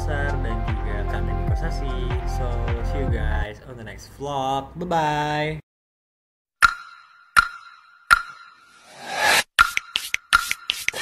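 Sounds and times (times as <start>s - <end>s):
sharp pops with ringing tone: 6.6s - 8.8s.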